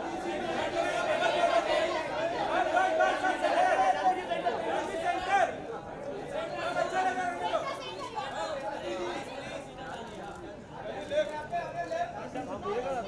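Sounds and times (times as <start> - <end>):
crowd chattering and calling: 0.0 - 13.0.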